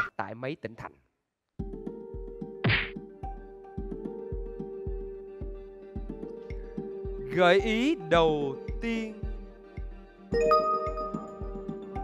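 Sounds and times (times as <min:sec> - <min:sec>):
game show countdown music: 0:07.2 - 0:12.0.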